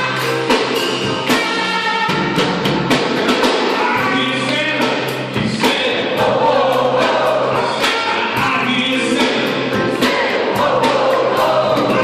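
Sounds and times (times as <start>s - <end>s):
electric keyboard with beat: 0.0s - 4.2s, 7.0s - 12.0s
man singing: 3.5s - 6.3s, 7.5s - 9.9s
women's choir singing: 6.2s - 8.1s, 9.9s - 12.0s.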